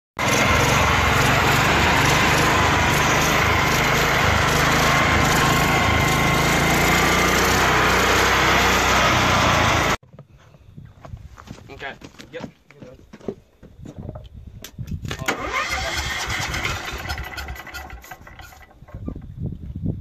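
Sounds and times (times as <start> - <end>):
small engine running at high speed: 0.2 - 10.0.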